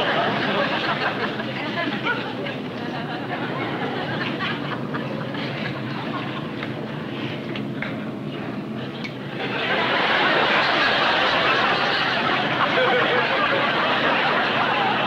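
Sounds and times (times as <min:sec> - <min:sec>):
studio audience laughing: 0:00.0 - 0:06.7, 0:09.3 - 0:15.0
steady background noise: 0:00.0 - 0:15.0.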